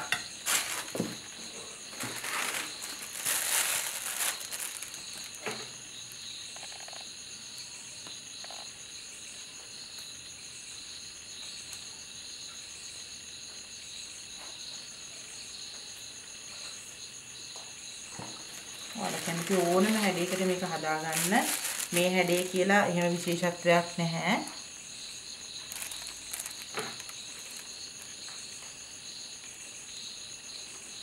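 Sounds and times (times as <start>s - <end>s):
insects chirring: 0.0s - 31.0s
loud rustle: 0.4s - 1.3s, 1.9s - 5.6s, 18.5s - 22.6s, 25.7s - 28.1s.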